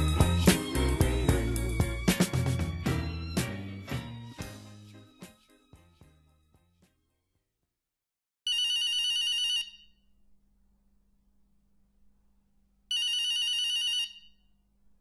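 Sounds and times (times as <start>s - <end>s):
telephone bell ringing: 8.5s - 10.0s, 12.9s - 14.4s.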